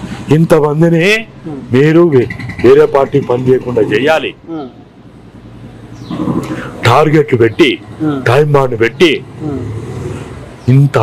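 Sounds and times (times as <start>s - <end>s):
man talking: 0.3s - 4.5s, 6.8s - 9.6s, 10.7s - 11.0s.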